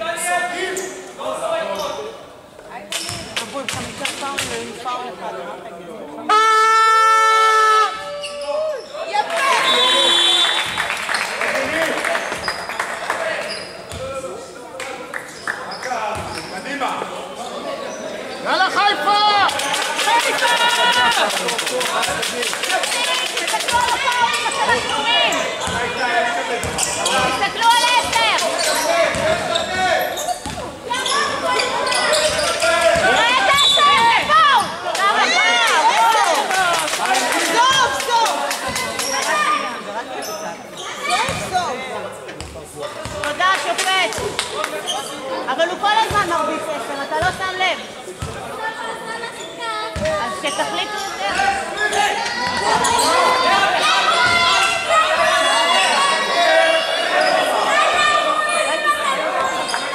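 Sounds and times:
voices calling out: 0:17.4 - 0:41.8
basketball bouncing: 0:25.6 - 0:26.0, 0:26.6 - 0:26.9, 0:29.1 - 0:29.5, 0:41.2 - 0:41.5, 0:50.0 - 0:50.2.

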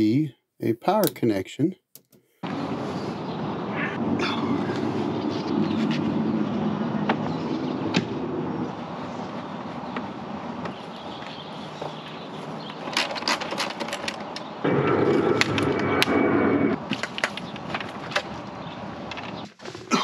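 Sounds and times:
loud steady noise: 0:14.6 - 0:17.0.

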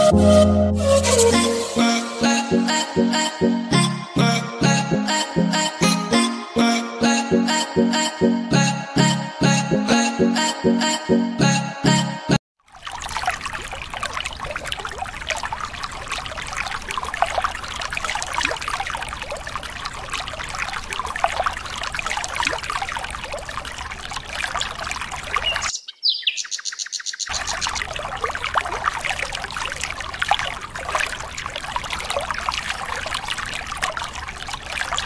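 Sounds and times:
high falling tone: 0:00.0 - 0:12.4
water stream splashing into water: 0:12.6 - 0:25.7, 0:27.3 - 0:35.0.

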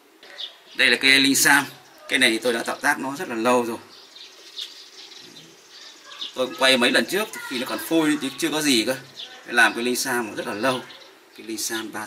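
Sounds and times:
light ambient noise: 0:00.0 - 0:12.0
faint bird calls: 0:03.8 - 0:11.7.

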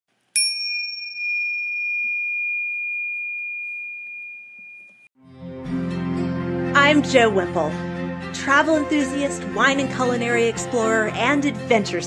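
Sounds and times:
bell-like chime ringing: 0:00.4 - 0:05.1.

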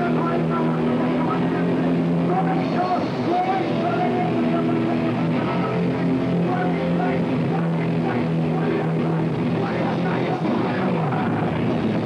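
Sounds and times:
bass: 0:00.0 - 0:12.0
distorted electric guitars: 0:00.0 - 0:12.0
drums: 0:00.0 - 0:12.0.

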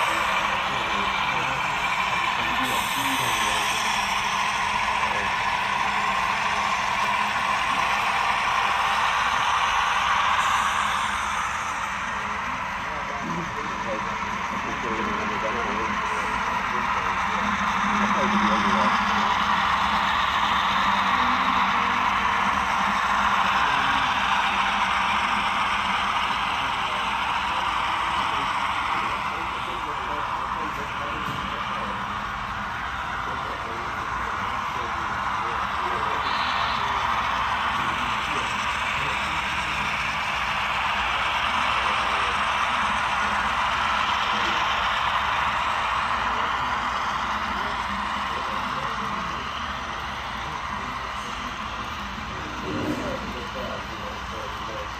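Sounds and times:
crowd chattering: 0:00.0 - 0:54.9.

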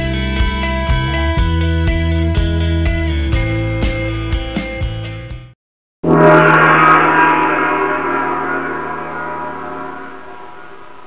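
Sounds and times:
gong-like metallic hit ringing: 0:06.0 - 0:11.0.

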